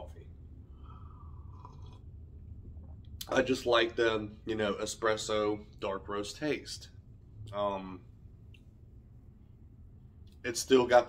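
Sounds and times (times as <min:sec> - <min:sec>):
low steady hum: 0:00.0 - 0:11.0
man sipping coffee: 0:00.8 - 0:03.3.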